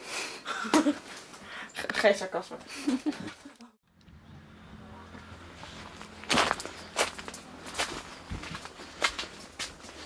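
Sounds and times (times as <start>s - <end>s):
footsteps crunching on gravel: 5.1s - 10.0s.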